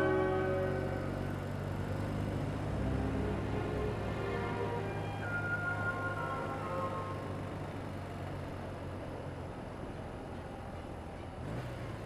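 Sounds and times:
background music: 0:02.6 - 0:07.9.

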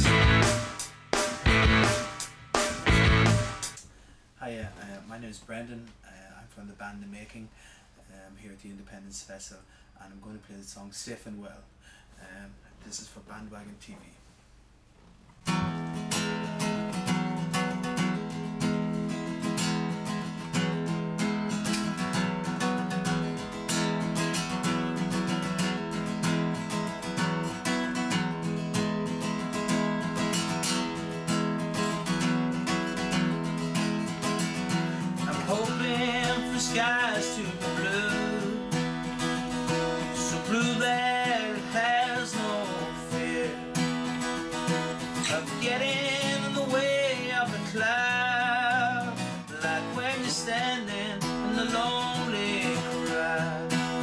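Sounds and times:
acoustic guitar strumming: 0:00.0 - 0:03.8, 0:15.4 - 0:54.0
man singing: 0:35.2 - 0:38.8, 0:39.9 - 0:43.8, 0:45.2 - 0:54.0.

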